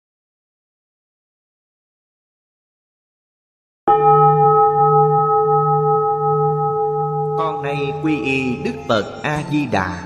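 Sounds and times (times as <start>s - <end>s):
bell ringing: 3.9s - 9.7s
gliding melody: 3.9s - 10.0s.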